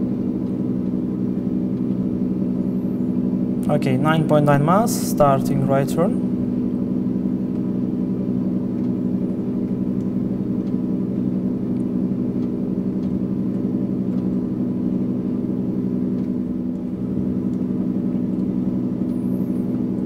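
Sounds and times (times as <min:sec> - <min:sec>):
aircraft engine drone: 0:00.0 - 0:20.0.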